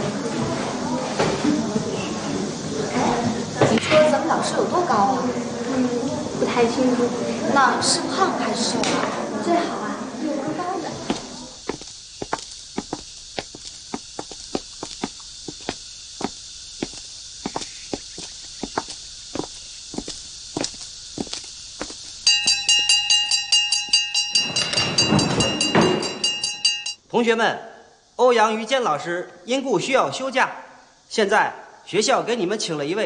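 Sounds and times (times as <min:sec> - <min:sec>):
footsteps on hard floor: 0:10.9 - 0:22.6
bell ringing rapidly: 0:22.2 - 0:27.0.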